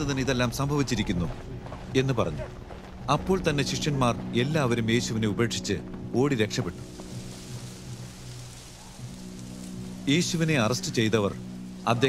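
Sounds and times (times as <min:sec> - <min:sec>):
low music drone: 0:02.9 - 0:12.0
steady rain falling: 0:05.8 - 0:12.0.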